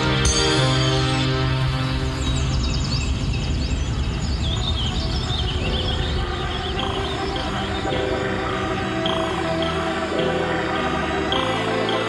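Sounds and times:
birds chirping: 1.5 - 12.0.

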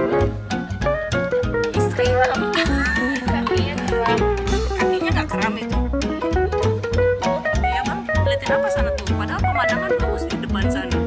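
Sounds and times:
background music with bass and drums: 0.0 - 11.0.

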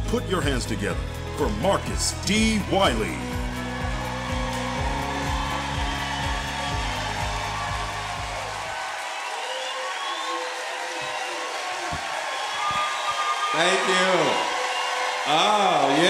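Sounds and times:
audience applauding and cheering: 0.0 - 16.0.

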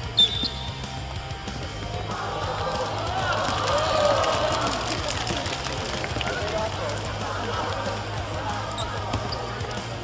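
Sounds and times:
players calling out: 1.7 - 10.0.

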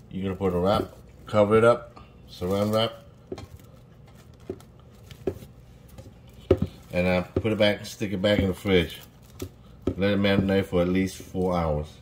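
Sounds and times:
cling wrap crinkling: 2.3 - 7.6.

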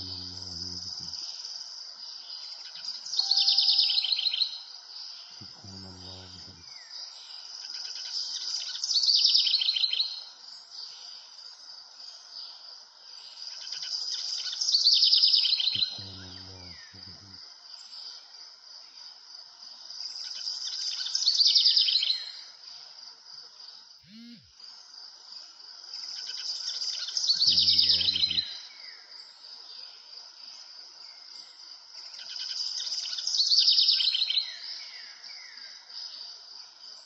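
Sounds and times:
songbird trilling: 3.2 - 4.6.

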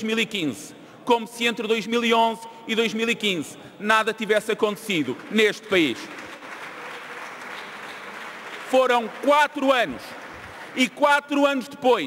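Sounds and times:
crowd applauding: 4.8 - 11.4.

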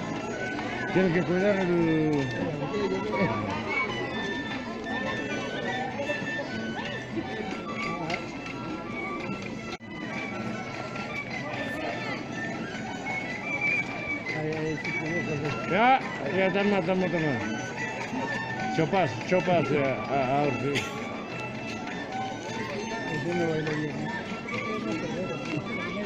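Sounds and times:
crowd talking: 0.0 - 26.0.

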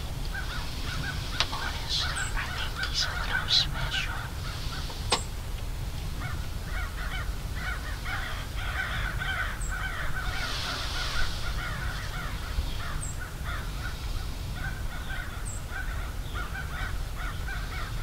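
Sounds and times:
steady low rumble: 0.0 - 9.2
crows cawing: 0.3 - 4.9, 6.2 - 14.0, 14.6 - 18.0.

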